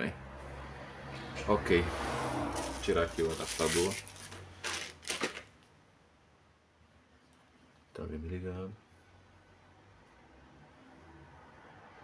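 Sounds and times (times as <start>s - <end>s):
power adapter and cable rustling: 2.6s - 5.7s.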